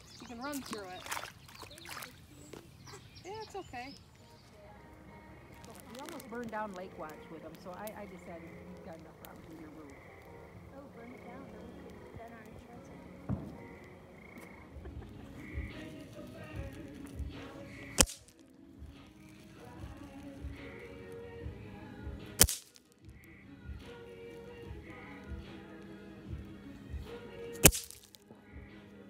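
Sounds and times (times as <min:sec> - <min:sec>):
background music with beat: 0:12.1 - 0:29.0
firecracker bangs: 0:13.3 - 0:13.7, 0:22.4 - 0:22.8, 0:27.6 - 0:28.2.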